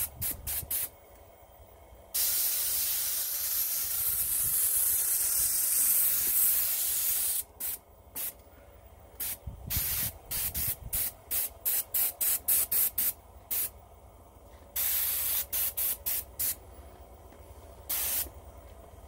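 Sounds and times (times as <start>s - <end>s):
airbrush spraying hiss: 0.0s - 0.9s, 2.2s - 8.4s, 9.2s - 13.8s, 14.8s - 16.6s, 17.9s - 18.3s.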